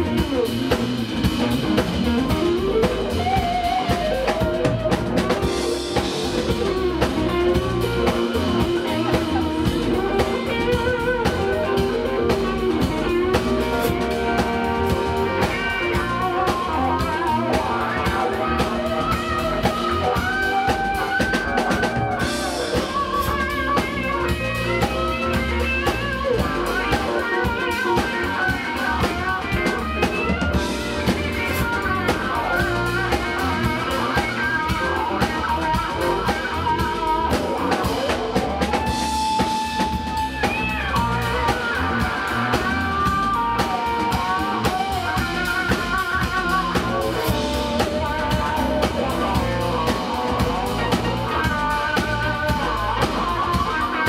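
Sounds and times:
drum kit: 0:00.0 - 0:54.0
electric guitar with bent notes: 0:00.0 - 0:54.0.

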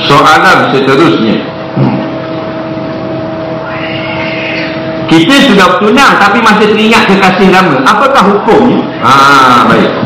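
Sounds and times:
faint steady hum: 0:00.0 - 0:10.0
steady background hiss: 0:00.0 - 0:10.0.

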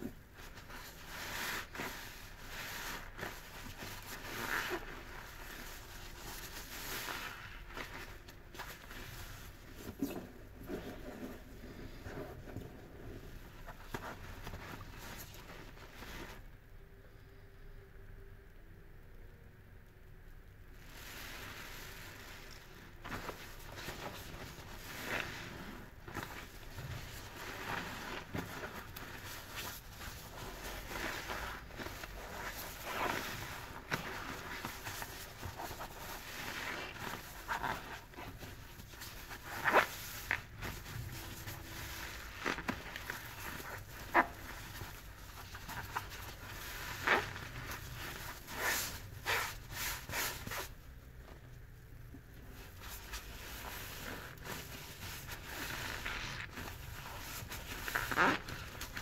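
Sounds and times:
foam sponges squelching in water: 0:00.0 - 0:16.5, 0:20.8 - 0:59.0.

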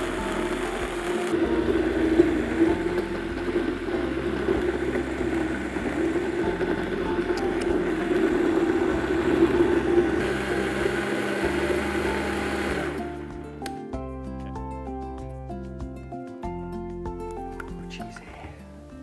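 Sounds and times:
blender motor running: 0:00.0 - 0:13.3.

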